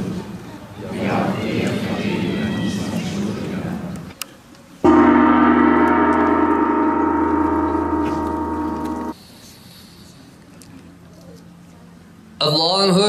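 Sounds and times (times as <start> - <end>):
gong ringing: 4.9 - 9.2.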